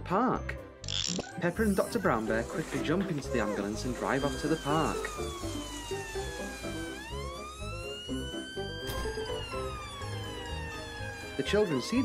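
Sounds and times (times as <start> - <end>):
background music: 0.0 - 12.0
ambulance siren wailing: 1.7 - 12.0.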